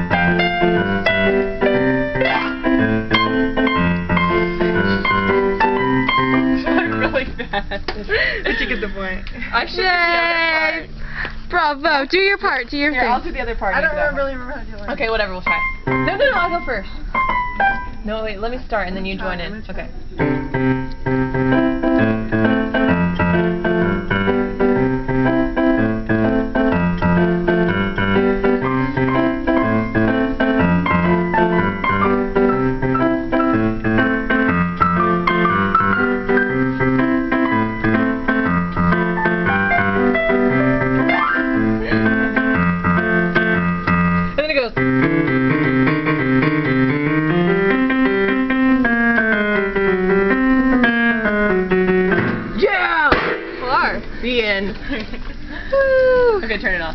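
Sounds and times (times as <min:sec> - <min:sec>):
digital piano duet: 0:00.0 - 0:07.4, 0:09.7 - 0:54.7.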